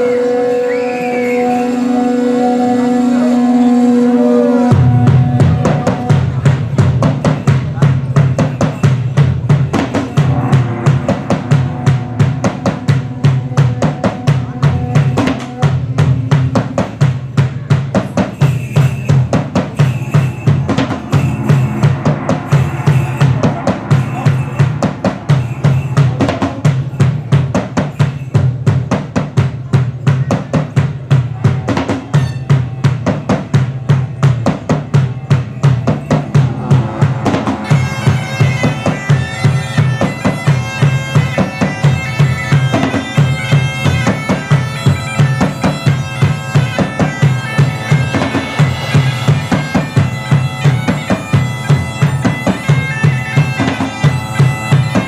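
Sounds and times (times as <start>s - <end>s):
large drums playing fast rhythm: 1.5s - 55.0s.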